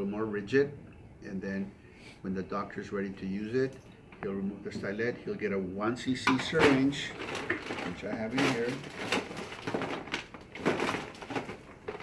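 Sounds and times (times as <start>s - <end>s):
plastic knocks and rustles: 6.2s - 12.0s.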